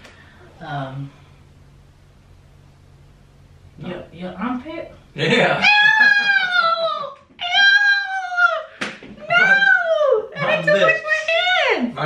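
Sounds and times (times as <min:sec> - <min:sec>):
woman squealing eww: 0:05.6 - 0:10.4.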